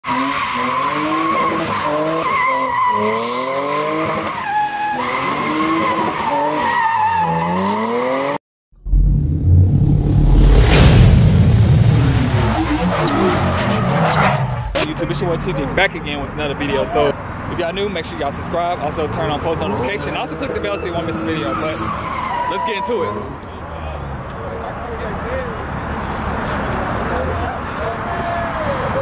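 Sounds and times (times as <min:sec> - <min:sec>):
car engine revving: 0:07.5 - 0:16.1
deep rumbling: 0:08.7 - 0:13.9
brief sweep: 0:08.8 - 0:13.1
tyre squeal: 0:20.3 - 0:23.3.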